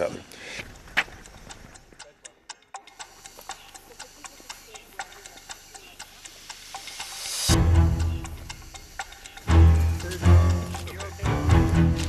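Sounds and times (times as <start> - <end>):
quiet regular ticking: 0.0 - 12.0.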